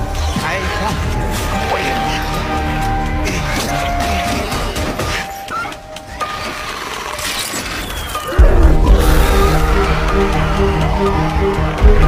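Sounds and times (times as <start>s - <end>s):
background film music: 0.0s - 12.0s.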